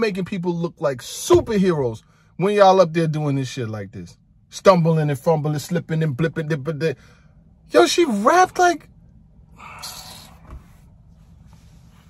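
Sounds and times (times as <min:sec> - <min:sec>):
man exhaling breathily: 0:09.5 - 0:10.6.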